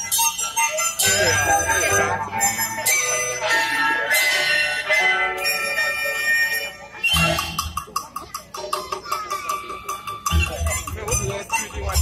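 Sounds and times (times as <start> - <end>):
orchestra playing folk song: 0.0 - 8.0.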